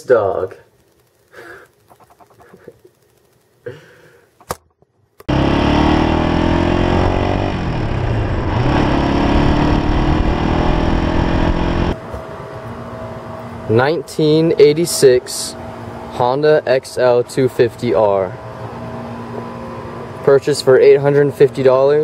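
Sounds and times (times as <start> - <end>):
motorcycle engine while riding: 5.2 - 12.0.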